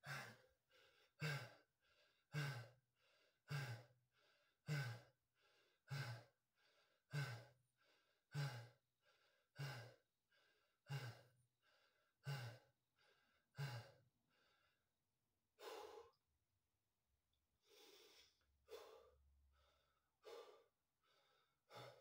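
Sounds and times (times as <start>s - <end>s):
man breathing hard: 0.0s - 14.8s, 15.6s - 16.2s, 17.6s - 22.0s.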